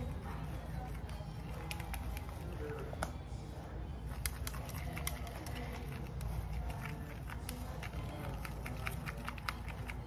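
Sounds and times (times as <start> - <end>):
brush clicking on bowl: 1.0 - 3.1, 4.1 - 10.0.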